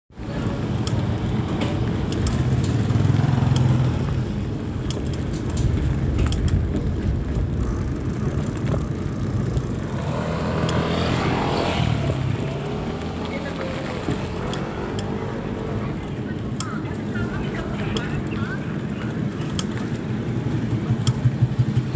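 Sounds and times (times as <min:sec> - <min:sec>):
motorcycle engines passing: 0:00.2 - 0:21.9
sharp clicks and knocks: 0:00.7 - 0:11.0, 0:20.6 - 0:21.9.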